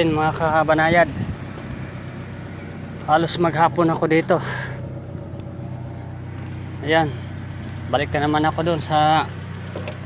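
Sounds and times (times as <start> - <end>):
man speaking: 3.1 - 4.9, 6.8 - 9.3.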